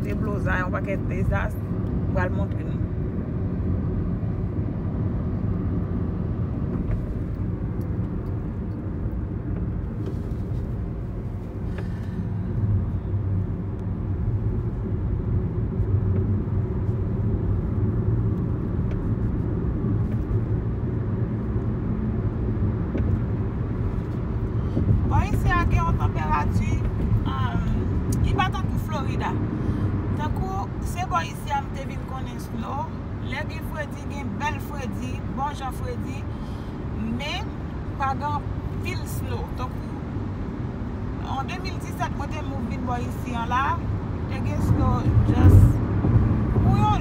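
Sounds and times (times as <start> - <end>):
car cabin road rumble: 0.0 - 47.0.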